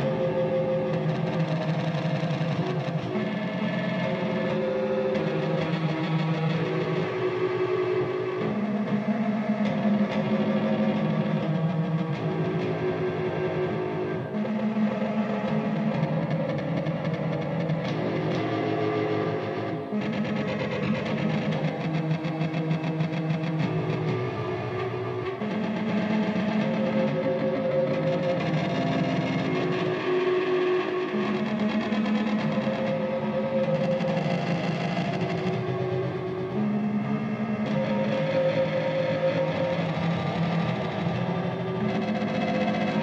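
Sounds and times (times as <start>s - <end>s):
processed electric guitar chords: 0.0s - 43.0s.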